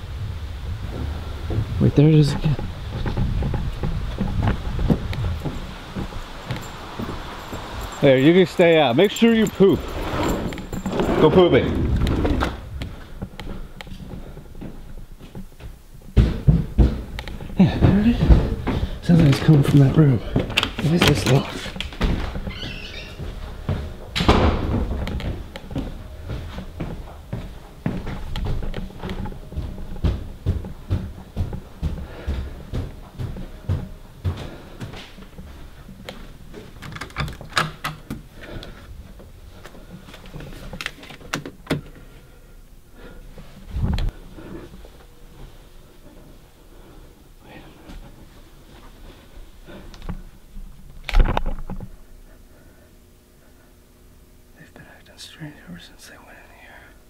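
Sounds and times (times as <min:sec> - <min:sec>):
microphone handling rumble: 0:00.0 - 0:07.8, 0:09.8 - 0:13.7, 0:43.6 - 0:44.2
wind on microphone: 0:00.0 - 0:08.0
footsteps in a house: 0:00.3 - 0:54.1
knocks and thumps: 0:02.5 - 0:08.0, 0:16.1 - 0:19.6, 0:23.2 - 0:25.9
loud thud: 0:24.2 - 0:25.0.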